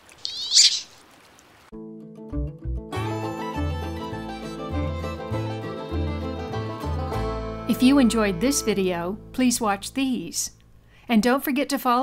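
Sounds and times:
duck squealing: 0.2s - 1.0s
music: 1.7s - 10.5s.

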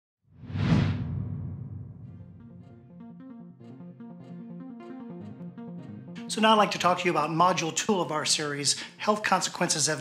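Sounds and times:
whoosh sound effect: 0.4s - 2.5s.

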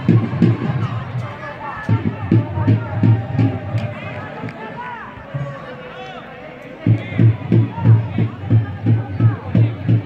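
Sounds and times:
distant shouts of players: 0.0s - 10.0s
man talking indistinctly: 5.3s - 10.0s.

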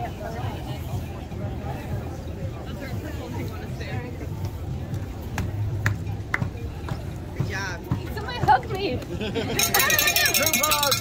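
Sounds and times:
outdoor crowd chatter: 0.0s - 11.0s.

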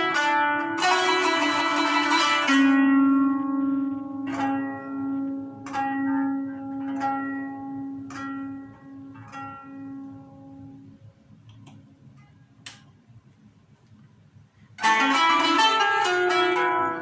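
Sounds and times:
plucked zither notes: 0.0s - 11.0s, 14.8s - 17.0s.

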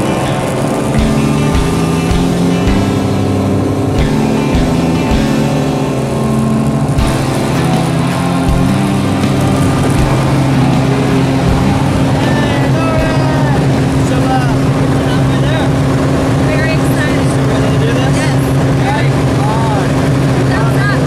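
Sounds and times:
plane engine droning: 0.0s - 21.0s
voices: 0.0s - 21.0s.

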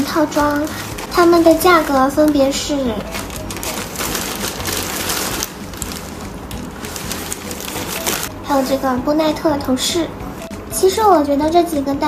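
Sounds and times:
plastic bag rustling: 0.0s - 9.0s.

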